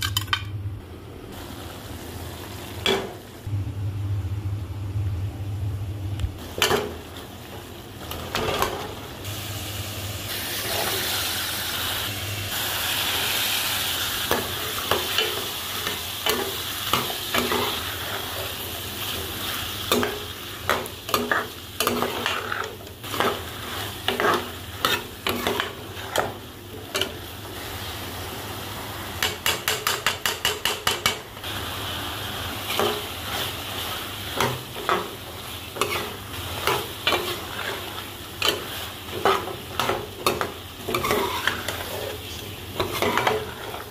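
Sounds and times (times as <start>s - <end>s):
food sizzling in metal pan: 1.3s - 3.5s, 6.4s - 43.9s
metal spoon scraping and knocking pan: 29.2s - 31.2s
metal spoon scraping pan: 35.8s - 43.9s.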